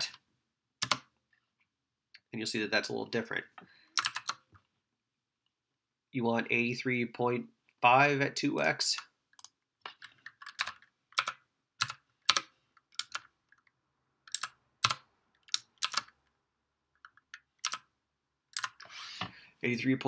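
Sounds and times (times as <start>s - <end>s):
computer keyboard keystrokes: 0.8s - 1.1s, 4.0s - 4.4s, 9.4s - 13.3s, 14.3s - 16.2s, 17.0s - 17.9s, 18.5s - 18.8s.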